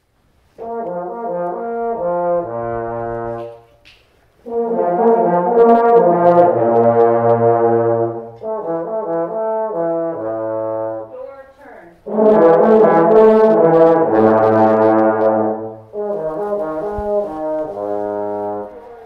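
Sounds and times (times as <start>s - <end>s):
trombones playing sustained chords: 0.5s - 3.8s, 4.4s - 11.2s, 12.0s - 19.0s.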